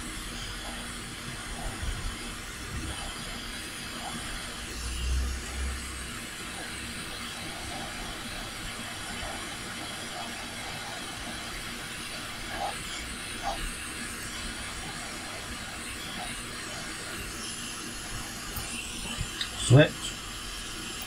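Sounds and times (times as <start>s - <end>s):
hot air station hissing: 0.0s - 21.0s.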